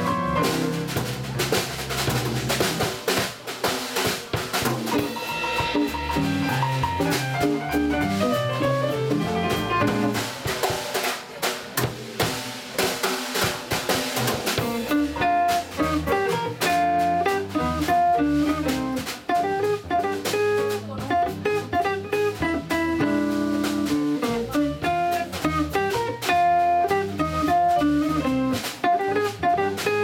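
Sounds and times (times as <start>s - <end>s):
digital piano: 0.0s - 3.1s, 4.8s - 11.0s, 14.5s - 30.0s
upright bass: 0.0s - 3.2s, 4.5s - 10.5s, 13.8s - 30.0s
drum kit: 0.0s - 30.0s
electric guitar: 4.9s - 10.3s, 14.6s - 30.0s.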